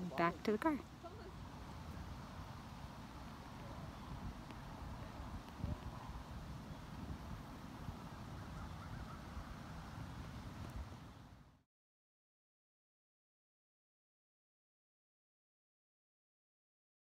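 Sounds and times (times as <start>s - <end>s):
wind buffeting microphone: 0.0s - 11.3s.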